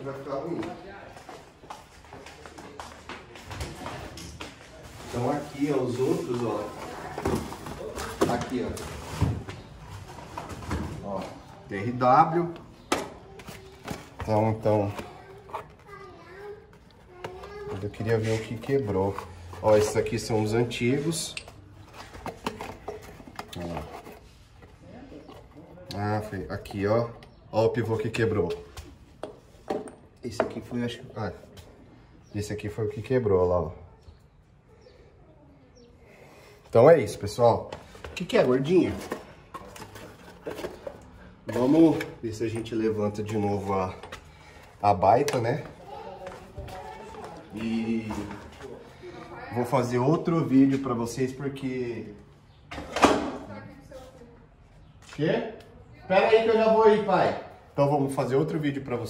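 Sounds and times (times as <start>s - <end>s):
handling cardboard box and metal part: 37.8s - 44.2s.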